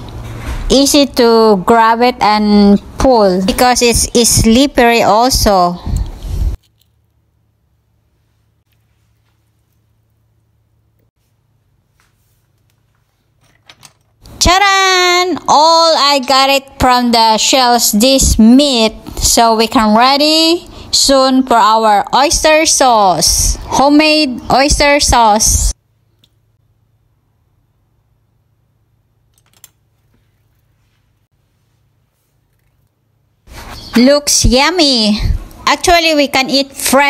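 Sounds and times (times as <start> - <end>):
small clicks: 29.3 - 29.8.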